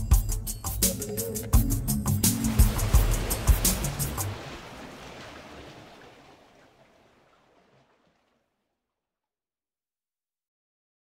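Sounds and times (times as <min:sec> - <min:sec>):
watery rushing splash: 0:02.2 - 0:08.6.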